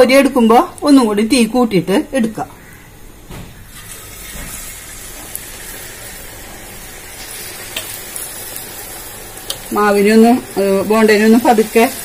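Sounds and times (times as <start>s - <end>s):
food sizzling in hot oil: 3.7s - 12.0s.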